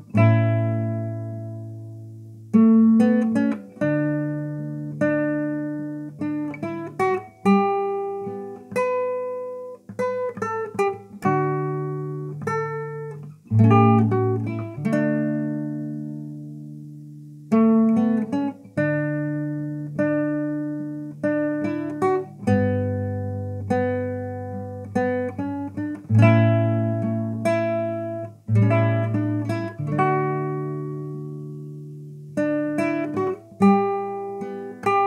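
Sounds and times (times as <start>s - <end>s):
classical guitar fingerstyle: 0.0s - 35.0s.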